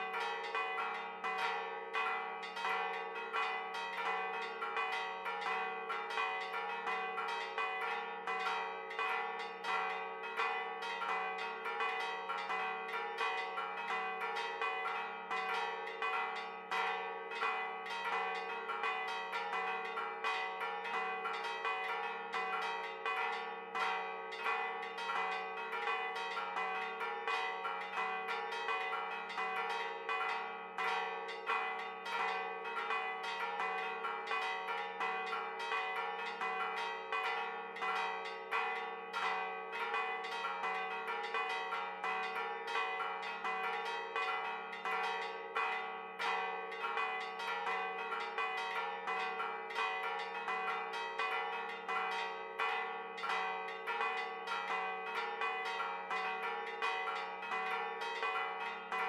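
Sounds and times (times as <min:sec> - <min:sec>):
church bells pealing: 0:00.0 - 0:59.0.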